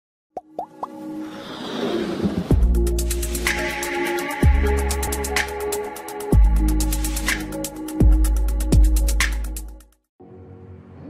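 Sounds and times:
intro music: 2.5s - 10.4s.

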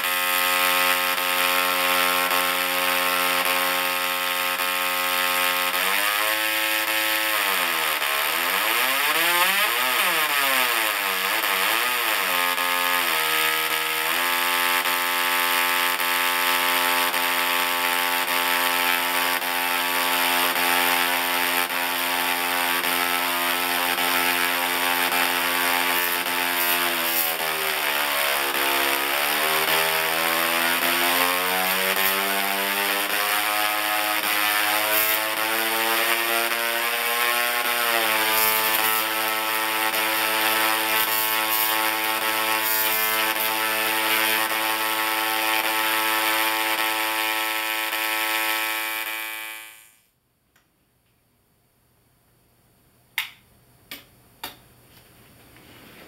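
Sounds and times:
tesla coil crackling buzz: 0.0s - 50.0s.

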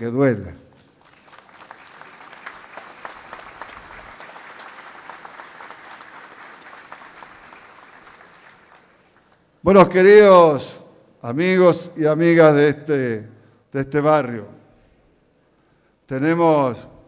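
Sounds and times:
crowd applauding: 0.8s - 9.5s.

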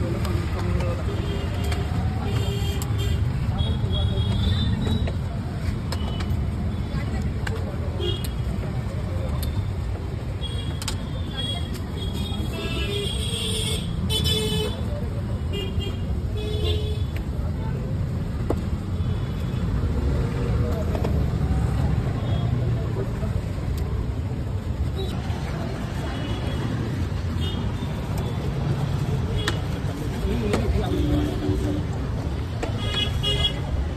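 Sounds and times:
rumble of passing vehicles: 0.0s - 33.9s.

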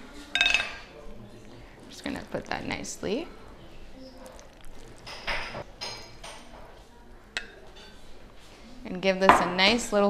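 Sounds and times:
bowl clinking: 0.3s - 1.0s, 4.0s - 6.6s, 7.4s - 8.0s.

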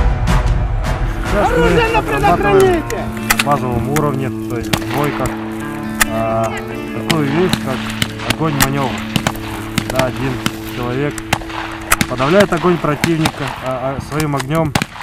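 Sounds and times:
background music with drone: 0.0s - 15.0s
voice singing: 1.2s - 3.3s
rifle shots: 7.1s - 15.0s.

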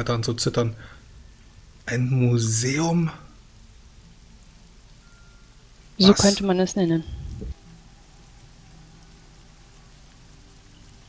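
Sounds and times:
faint steady hiss: 0.0s - 11.0s
low held tones: 4.9s - 9.2s
brief low rumble: 7.1s - 7.6s.

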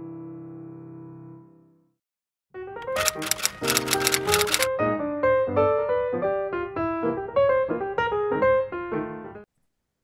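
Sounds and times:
typewriter keystrokes clattering: 2.8s - 4.7s.

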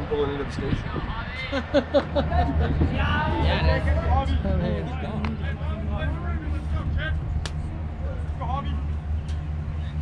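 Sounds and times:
low rumble: 0.0s - 10.0s
sharp crack: 7.4s - 7.6s.

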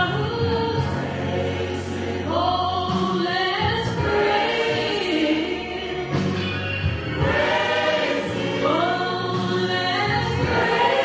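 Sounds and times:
woman singing gospel: 0.0s - 1.1s, 1.8s - 6.2s, 8.5s - 11.0s
backing voices singing: 0.0s - 11.0s.

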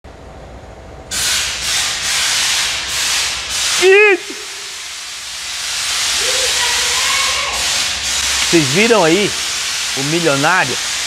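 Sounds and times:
pressurised spray hissing: 1.1s - 11.0s.

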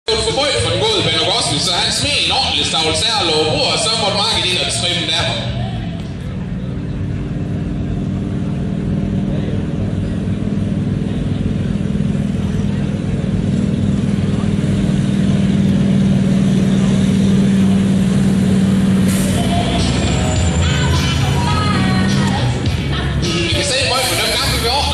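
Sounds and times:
truck engine running under load: 0.1s - 24.9s.

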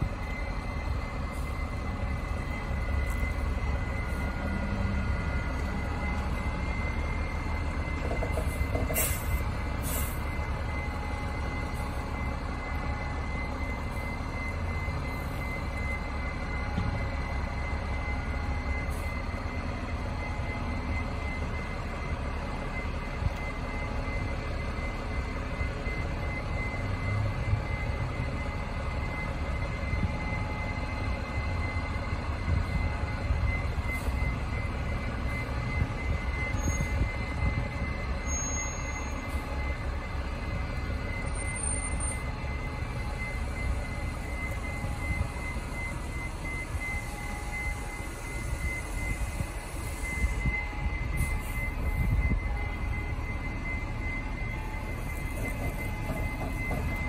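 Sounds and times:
bus engine running: 0.0s - 57.0s.

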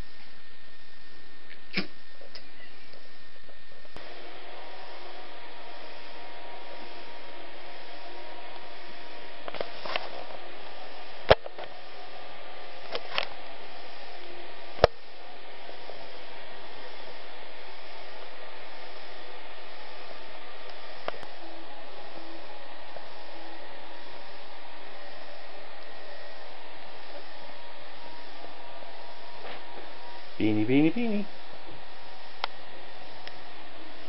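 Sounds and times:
steady hiss: 0.0s - 34.0s.

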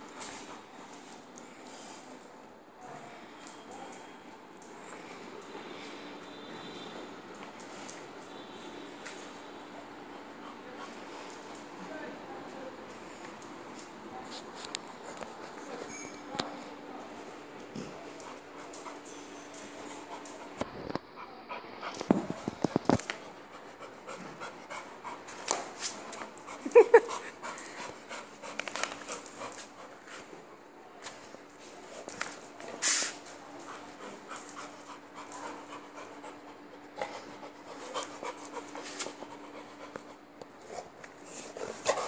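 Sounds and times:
dog panting: 23.1s - 30.4s, 33.4s - 42.0s.

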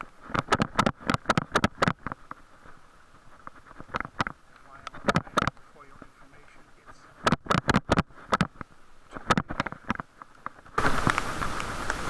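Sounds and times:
muffled clicks and taps: 0.0s - 12.0s
steady hiss: 0.0s - 12.0s.

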